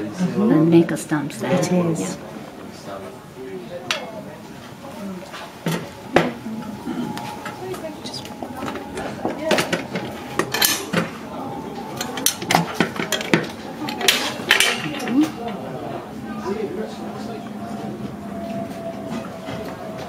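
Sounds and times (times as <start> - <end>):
metal and glass clinking: 11.9 - 15.6.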